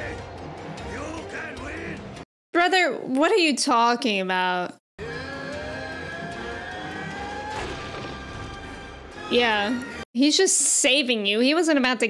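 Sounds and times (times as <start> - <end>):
dramatic music: 0.0 - 2.2, 5.0 - 10.0.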